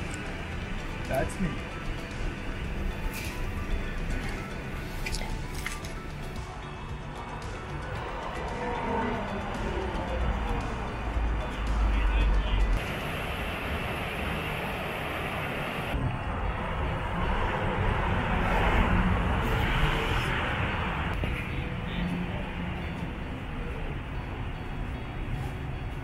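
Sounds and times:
city traffic noise: 0:00.0 - 0:26.0
vehicle passing: 0:06.4 - 0:24.0.

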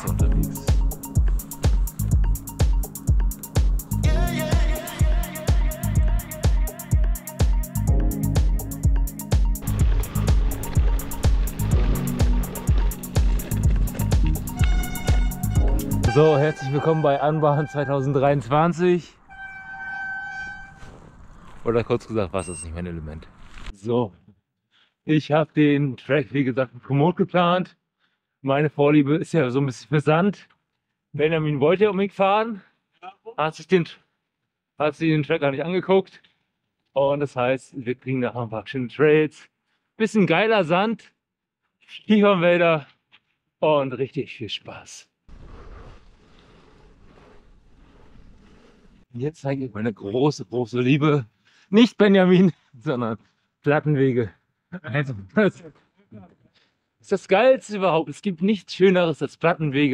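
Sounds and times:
steady horn-like tone: 0:14.4 - 0:21.0.

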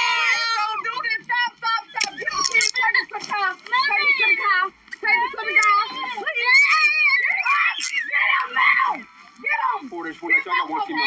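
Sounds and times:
woman screaming and yelling: 0:00.0 - 0:02.9, 0:05.1 - 0:09.1.

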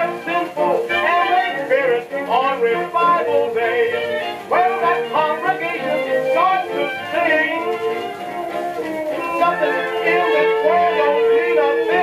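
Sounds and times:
jazz band on old record: 0:00.0 - 0:12.0
person singing: 0:00.0 - 0:12.0.

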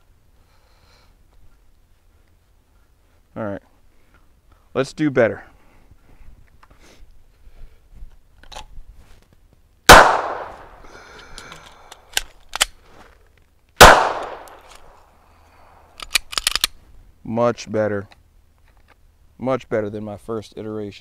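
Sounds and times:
pistol shots ringing out: 0:09.9 - 0:10.8, 0:13.8 - 0:14.7
magazine reload clicks: 0:09.9 - 0:12.8, 0:13.8 - 0:15.0, 0:15.9 - 0:16.8.

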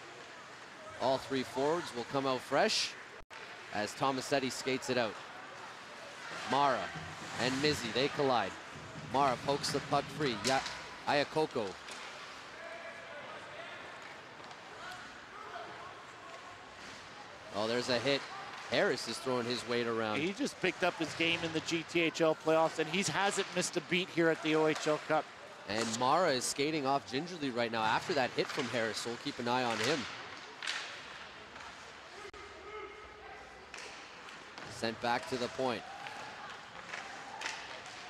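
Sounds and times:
distant voices of players and spectators: 0:00.0 - 0:38.0.

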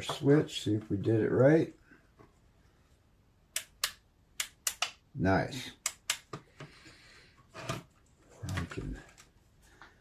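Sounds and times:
switch clicks: 0:03.5 - 0:05.0, 0:05.8 - 0:06.3.

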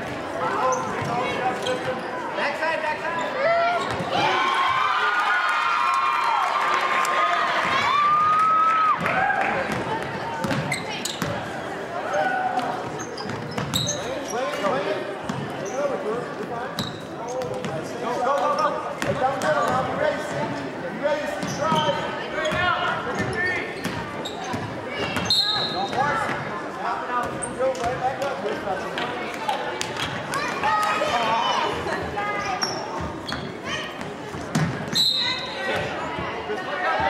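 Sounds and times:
short high squeaks: 0:13.0 - 0:14.4.

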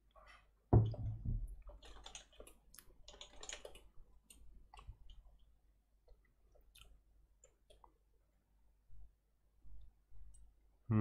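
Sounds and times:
keyboard and mouse clicks: 0:01.6 - 0:05.2.

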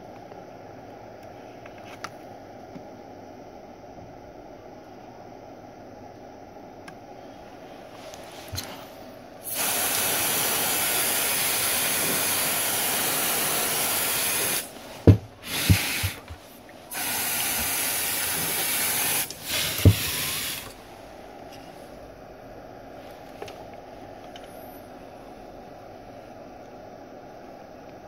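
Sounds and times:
spray can hissing: 0:09.4 - 0:16.3, 0:16.9 - 0:20.8.

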